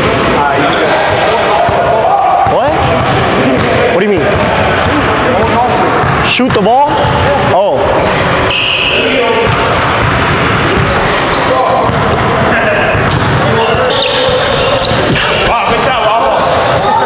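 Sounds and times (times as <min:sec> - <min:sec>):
indistinct voices echoing: 0:00.0 - 0:17.0.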